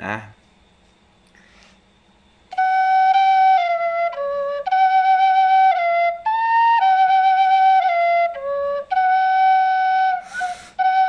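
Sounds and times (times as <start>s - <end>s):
duct flute holding a note: 2.5s - 11.0s.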